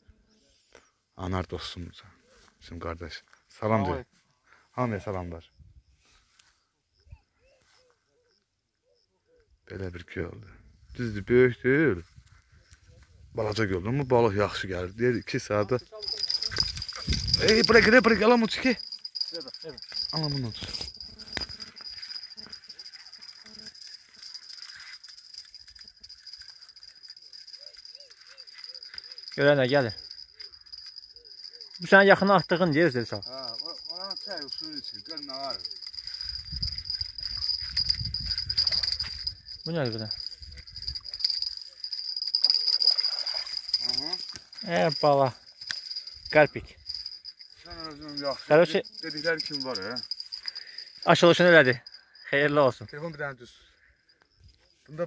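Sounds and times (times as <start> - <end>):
crickets trilling: 4.9 - 55.0
high-pitched insect drone: 14.9 - 54.6.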